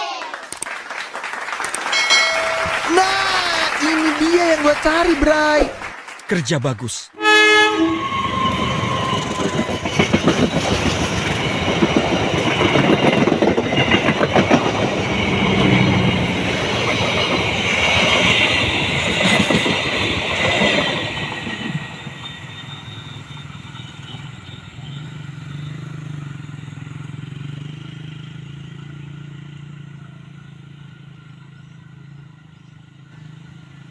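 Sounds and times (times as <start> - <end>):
train passing: 1.9 - 5.9, 7.2 - 33.8
wheels clattering over rail joints: 8.7 - 26.2.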